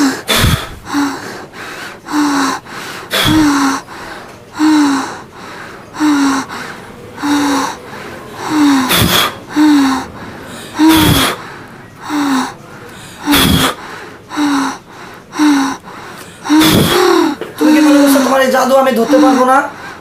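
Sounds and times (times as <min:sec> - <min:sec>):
woman breathing hard: 0:00.0 - 0:18.1, 0:19.0 - 0:20.0.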